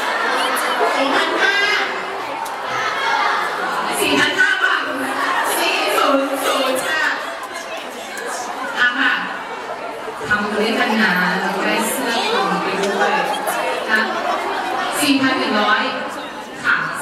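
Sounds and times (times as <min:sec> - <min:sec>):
people talking at once: 0:00.0 - 0:17.0.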